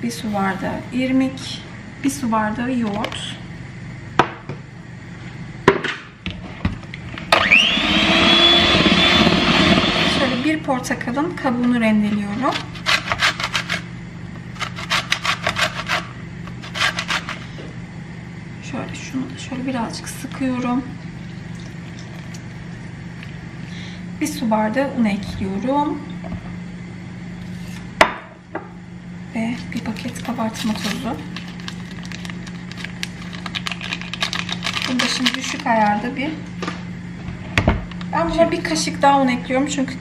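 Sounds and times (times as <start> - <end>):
steady low hum: 0.0 - 7.7, 8.3 - 40.0
peel grated on metal grater: 12.5 - 13.9, 14.6 - 17.4
paper sachet shaken and tapped: 30.0 - 35.7.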